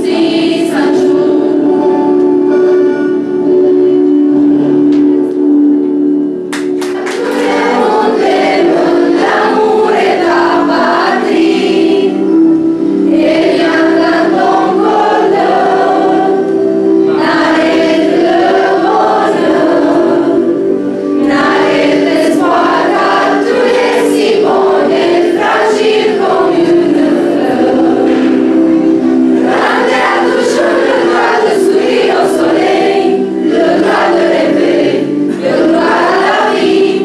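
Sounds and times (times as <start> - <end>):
youth choir singing: 0.0 - 5.3, 6.8 - 37.0.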